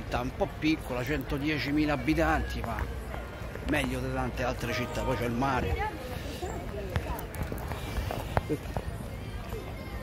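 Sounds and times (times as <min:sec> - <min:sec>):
city square hum: 0:00.0 - 0:10.0
footsteps on stone paving: 0:00.0 - 0:10.0.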